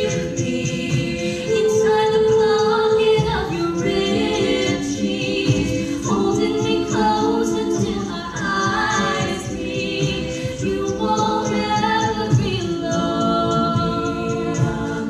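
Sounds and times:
backing vocal harmonies: 0.0 - 15.0
lead voice singing: 0.0 - 15.0
steady beat: 0.0 - 15.0.

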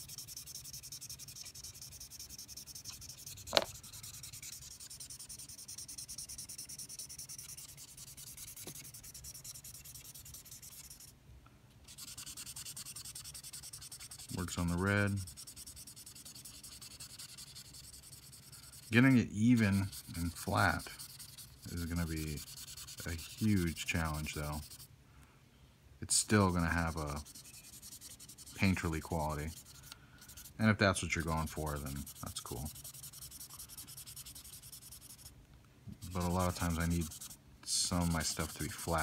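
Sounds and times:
marker scrubbing on paper: 0.0 - 11.1, 11.9 - 24.9, 26.2 - 35.3, 35.9 - 39.0.

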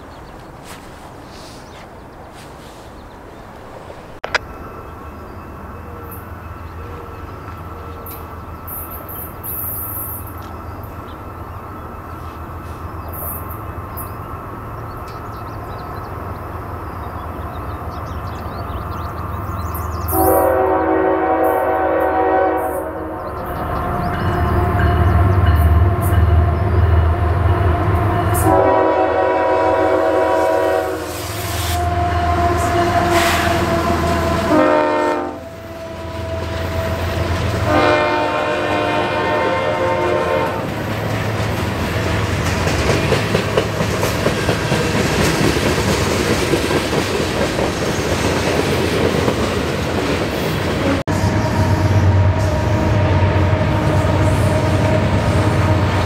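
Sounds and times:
train horn blasts: 20.1 - 23.3, 24.6 - 40.7, 50.8 - 56.0
train wheels clicking over rail joints: 40.7 - 50.9.

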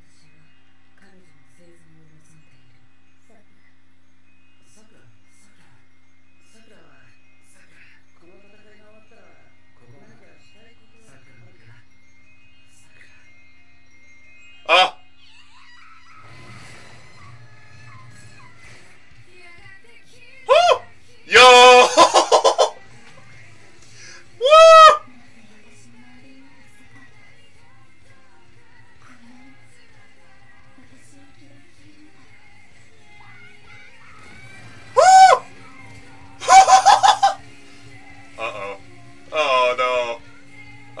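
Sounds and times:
music: 0.0 - 41.0
voices: 19.3 - 23.3, 35.0 - 37.4, 38.2 - 40.4
man's excited yelp: 20.5 - 22.7, 24.4 - 25.0, 35.0 - 35.5, 36.4 - 37.4.

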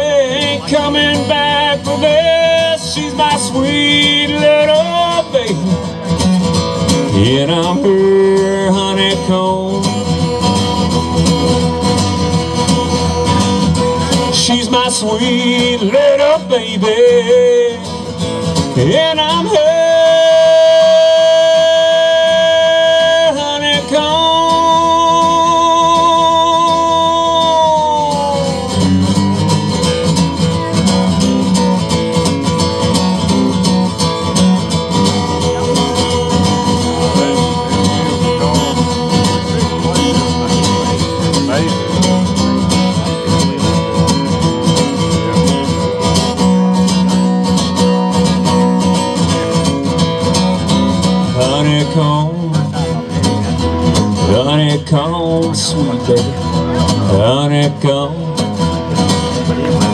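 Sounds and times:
acoustic guitar strumming: 0.0 - 59.9
man singing with vibrato: 0.0 - 59.9.

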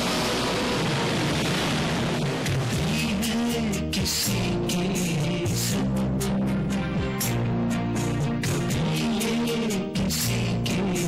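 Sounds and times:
ocean surf breaking: 0.0 - 3.0.

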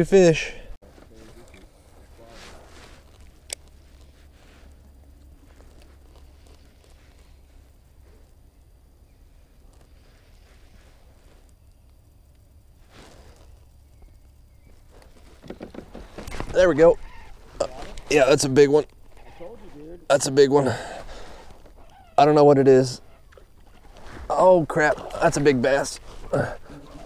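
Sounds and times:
fishing gear handling noises: 14.6 - 18.1, 21.0 - 22.2, 23.0 - 27.0.

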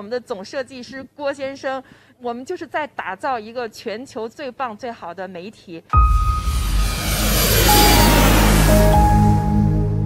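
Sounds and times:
airplane fly-by effect: 6.0 - 10.0
synth chords over deep bass: 6.0 - 10.0.

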